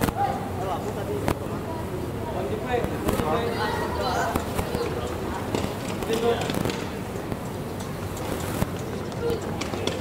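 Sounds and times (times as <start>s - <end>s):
steady outdoor noise: 0.0s - 10.0s.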